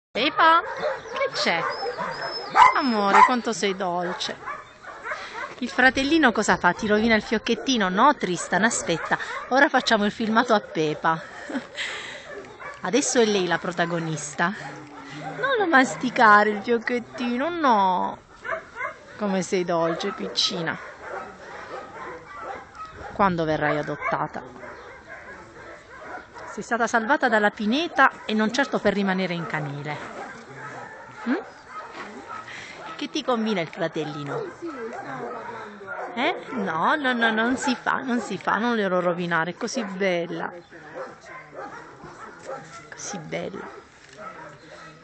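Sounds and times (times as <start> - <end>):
dogs whimpering and yipping: 0.4 - 5.6, 8.4 - 17.6, 18.2 - 27.2, 29.4 - 33.0, 33.9 - 38.3.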